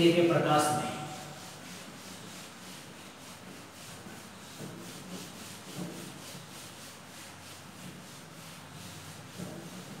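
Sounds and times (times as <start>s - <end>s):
eraser rubbing whiteboard: 0.0s - 10.0s.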